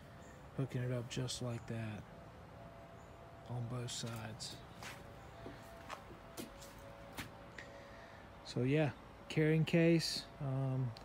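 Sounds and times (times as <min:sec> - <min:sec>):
faint steady hum: 0:00.0 - 0:11.0
footsteps on wooden deck: 0:04.0 - 0:07.5.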